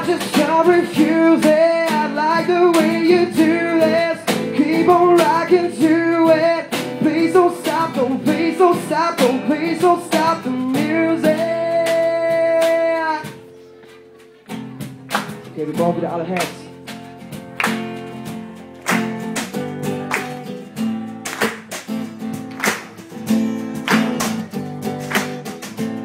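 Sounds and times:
man singing: 0:00.0 - 0:13.4, 0:15.5 - 0:16.8
guitar strumming: 0:00.0 - 0:26.0.

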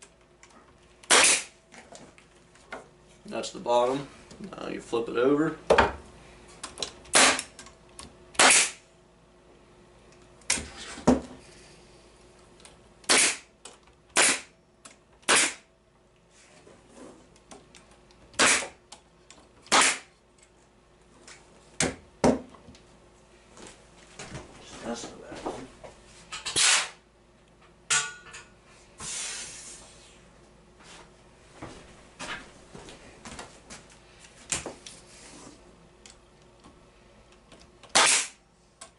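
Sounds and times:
pneumatic stapler shots: 0:01.0 - 0:01.6, 0:07.1 - 0:07.5, 0:08.3 - 0:08.8, 0:13.0 - 0:13.5, 0:14.1 - 0:14.5, 0:15.2 - 0:15.6, 0:18.3 - 0:18.8, 0:19.7 - 0:20.1, 0:26.5 - 0:27.0, 0:37.8 - 0:38.4.

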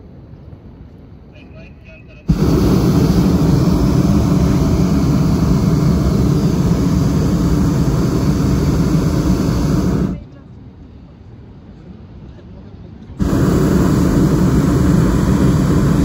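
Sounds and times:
propane burner blast: 0:02.3 - 0:10.2, 0:13.2 - 0:16.0.

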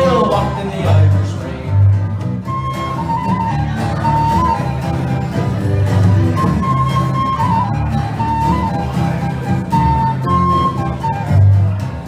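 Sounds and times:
electric bass: 0:00.0 - 0:12.0
strummed acoustic guitar: 0:00.0 - 0:12.0
fiddle melody: 0:01.7 - 0:12.0.

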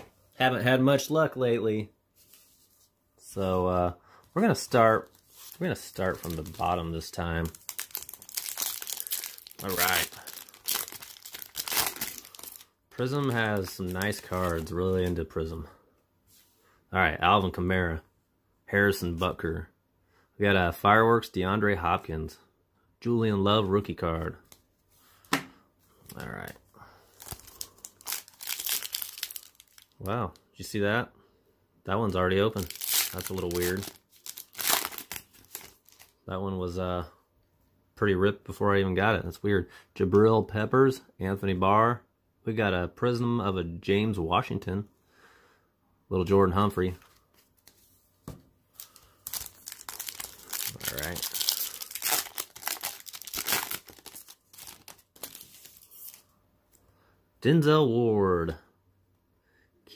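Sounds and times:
foil wrapper crinkling: 0:04.5 - 0:15.2, 0:27.1 - 0:30.1, 0:32.5 - 0:36.2, 0:48.8 - 0:56.2.

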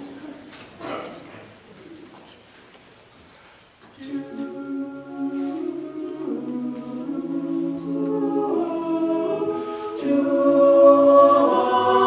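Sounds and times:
singers humming softly: 0:03.8 - 0:12.0.

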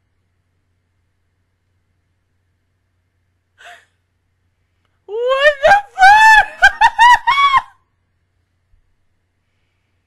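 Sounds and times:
woman squealing laughter: 0:05.1 - 0:07.8.

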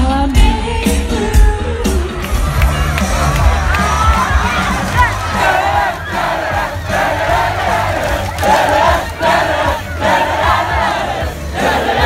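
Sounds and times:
concert crowd singing: 0:01.8 - 0:12.0.

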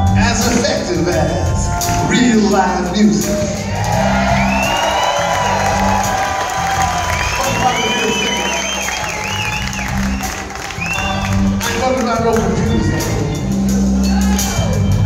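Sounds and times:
live soul band playing: 0:00.0 - 0:15.0
audience cheering: 0:03.6 - 0:15.0.

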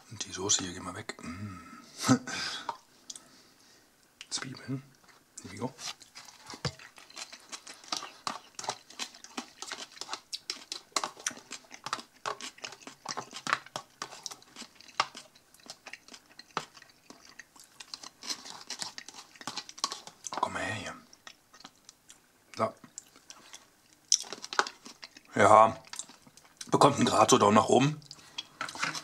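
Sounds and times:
person chewing food: 0:05.0 - 0:27.2, 0:28.0 - 0:29.0
plastic fork scraping plastic tub: 0:05.8 - 0:15.2, 0:28.6 - 0:29.0.

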